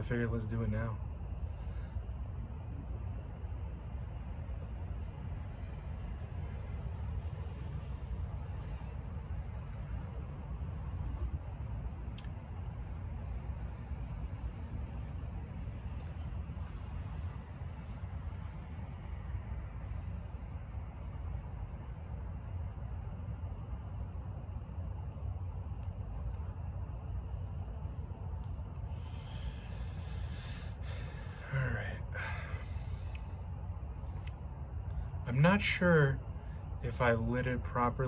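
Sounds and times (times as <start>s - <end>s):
low background rumble: 0.0s - 38.0s
faint clicks: 12.0s - 12.4s.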